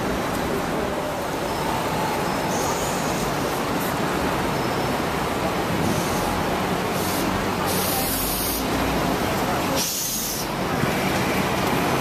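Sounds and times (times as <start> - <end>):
street traffic: 0.0 - 12.0
bus air brakes hissing: 2.4 - 3.5, 5.8 - 8.8, 9.7 - 10.6.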